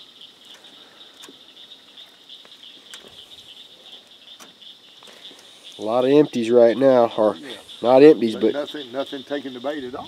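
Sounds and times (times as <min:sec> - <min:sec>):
frogs and insects calling: 0:00.0 - 0:10.0.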